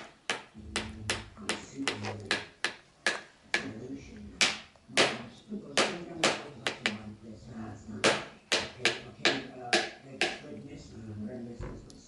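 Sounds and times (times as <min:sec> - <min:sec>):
plastic spoon tapping on tray: 0:05.8 - 0:07.0.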